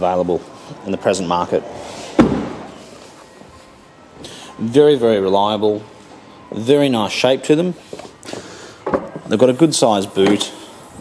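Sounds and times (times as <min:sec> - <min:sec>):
car door shutting thud: 0:02.1 - 0:02.7.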